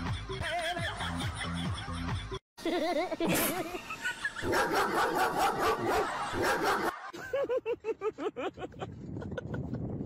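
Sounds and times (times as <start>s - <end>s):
dog barking rapidly: 4.4s - 7.0s.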